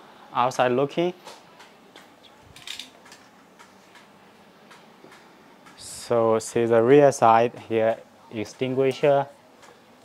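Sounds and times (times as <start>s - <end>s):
faint clicks and light taps: 1.2s - 6.6s, 8.5s - 9.8s.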